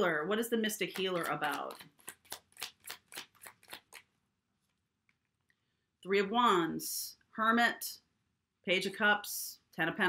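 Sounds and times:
cards being shuffled: 0.7s - 5.3s.

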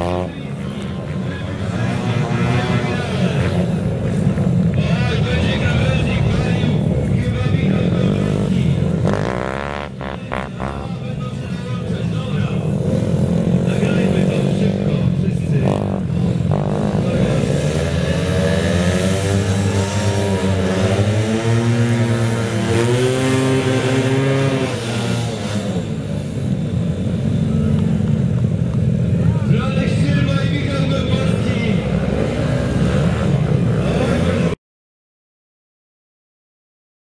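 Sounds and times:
small motorcycle engines revving: 0.0s - 34.6s.

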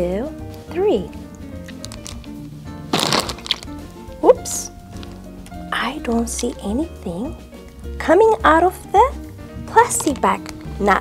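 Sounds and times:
background music: 0.0s - 11.0s
plastic bag crunching: 2.9s - 3.8s.

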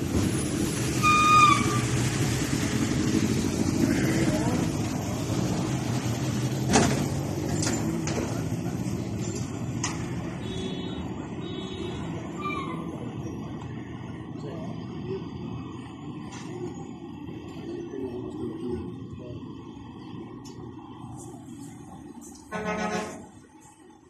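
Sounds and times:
vehicle engine running: 1.6s - 10.7s
indistinct voices: 3.1s - 10.4s.

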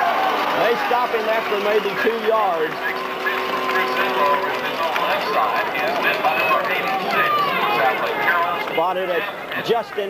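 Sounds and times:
stadium crowd shouting and cheering: 0.0s - 10.0s.

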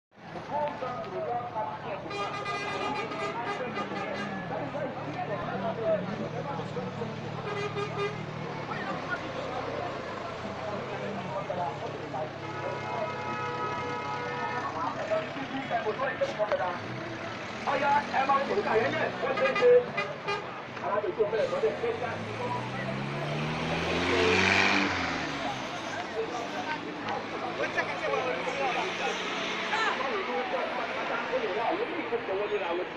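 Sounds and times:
people's voices: 0.2s - 32.9s
bus diesel engine running: 0.4s - 30.9s
car horn: 2.0s - 4.4s, 7.4s - 8.3s, 12.4s - 14.8s, 19.2s - 20.6s.

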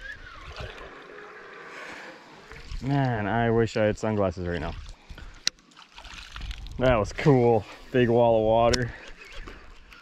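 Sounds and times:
lure splashing across water: 0.0s - 3.4s, 4.1s - 10.0s.

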